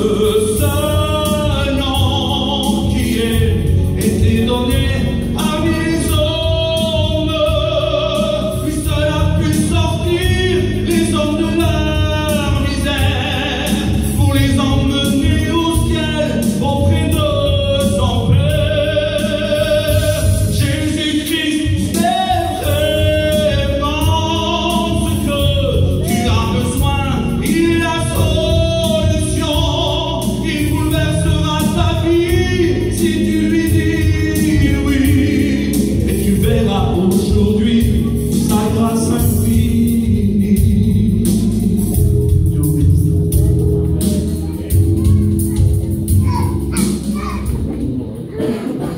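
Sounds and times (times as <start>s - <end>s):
man singing hymn into microphone: 0.0s - 46.5s
musical accompaniment: 0.0s - 48.9s.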